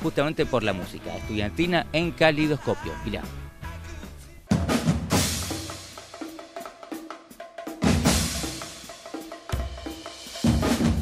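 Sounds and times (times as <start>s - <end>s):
music with drums: 0.0s - 11.0s
loud drumming with sharp strikes: 4.0s - 11.0s.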